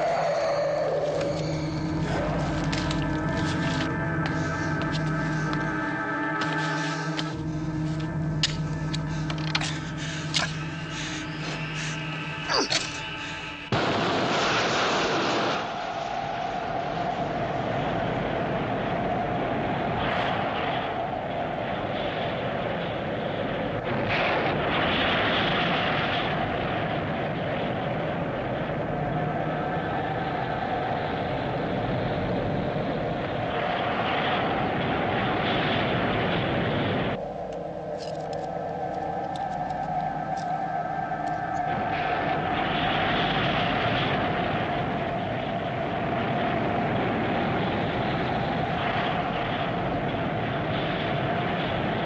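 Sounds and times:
constant hum: 0:00.0 - 0:52.0
rushing rocket engine noise: 0:00.0 - 0:52.0.

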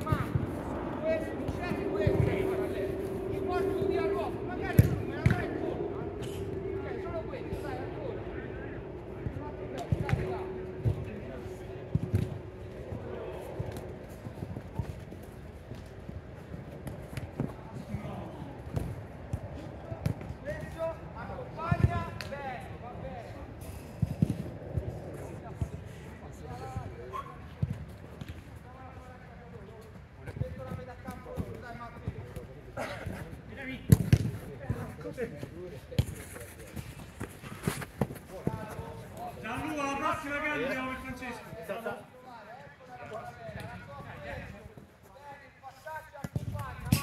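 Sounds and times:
football kicked and bouncing: 0:33.8 - 0:39.3, 0:46.2 - 0:47.0.

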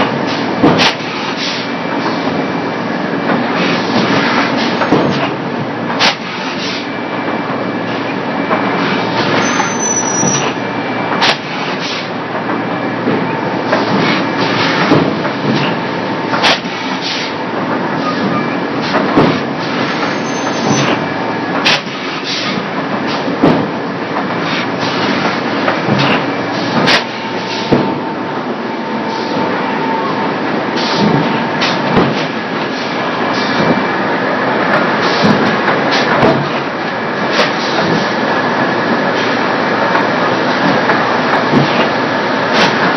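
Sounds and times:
steady machinery din: 0:06.9 - 0:42.9
faint machine whine: 0:25.2 - 0:34.7.

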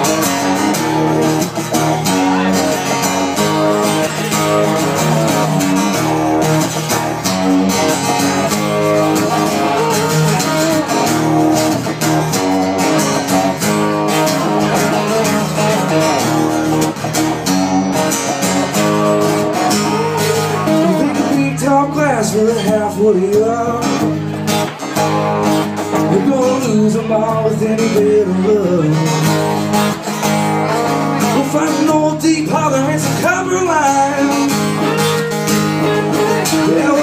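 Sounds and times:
country guitar playing: 0:00.0 - 0:37.0.

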